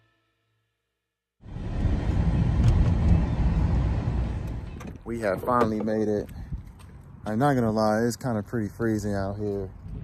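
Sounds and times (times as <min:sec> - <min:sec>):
car road rumble: 0:01.4 - 0:07.9.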